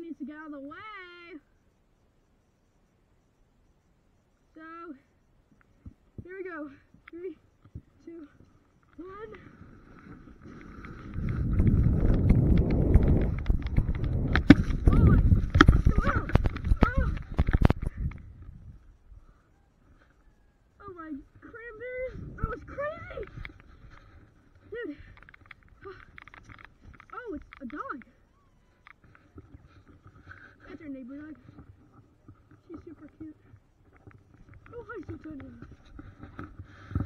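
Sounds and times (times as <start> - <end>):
sled runners scraping snow: 9.4 - 17.8
sled knocking over bumps: 10.4 - 18.1.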